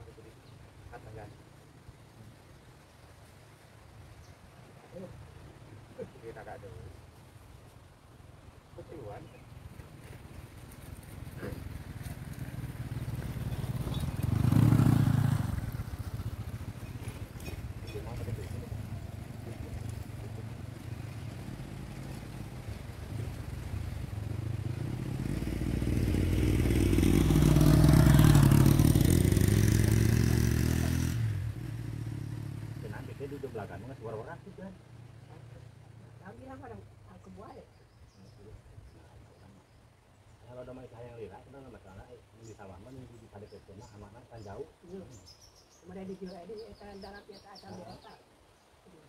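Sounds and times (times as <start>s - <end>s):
motorcycles passing by: 8.9s - 38.5s, 40.5s - 48.2s.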